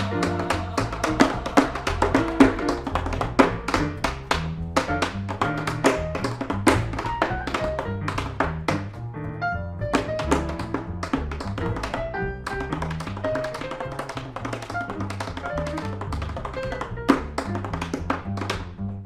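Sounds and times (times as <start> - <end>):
tap shoes on wooden board: 0.0 - 9.0, 9.9 - 18.8
piano: 0.0 - 19.0
upright bass: 0.0 - 19.0.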